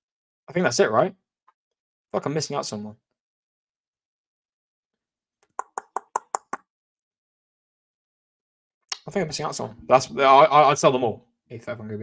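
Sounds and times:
sharp taps: 0:05.5 - 0:06.6.

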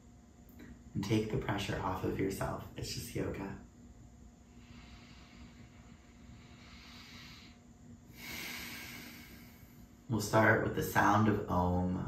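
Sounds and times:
deep breathing through the nose: 0:04.4 - 0:10.1.

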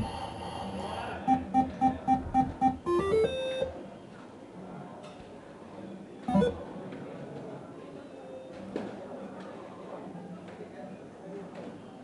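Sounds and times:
electronic dartboard beeps: 0:01.3 - 0:03.7, 0:06.3 - 0:06.6.

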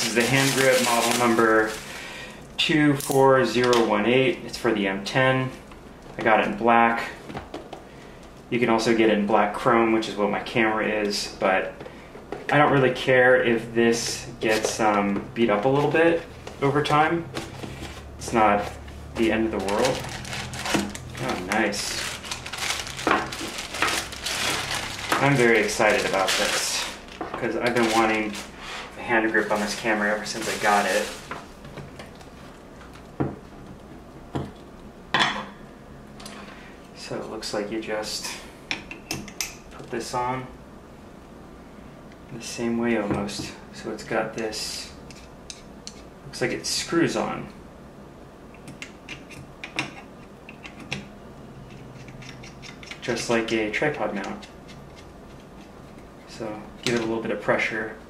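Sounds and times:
plastic bag crinkling: 0:00.0 - 0:02.3, 0:19.2 - 0:32.6
metallic clicks and scrapes: 0:51.6 - 0:53.3.

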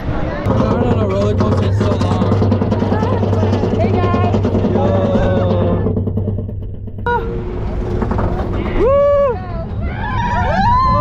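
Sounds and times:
low rumble of moving ride: 0:00.0 - 0:11.0
riders screaming and whooping: 0:08.7 - 0:11.0.

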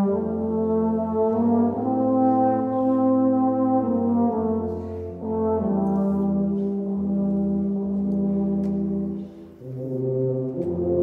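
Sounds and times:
low brass ensemble chords: 0:00.0 - 0:11.0.

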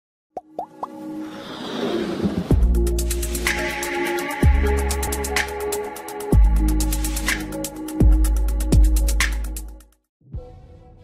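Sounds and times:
rising plop sound effects: 0:00.4 - 0:01.0
intro music: 0:02.5 - 0:09.8.

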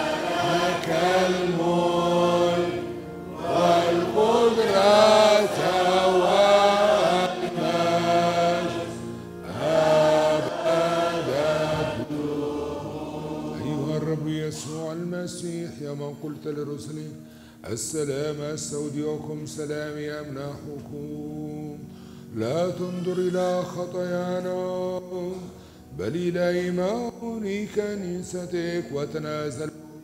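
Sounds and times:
held keyboard chords: 0:00.0 - 0:15.2.

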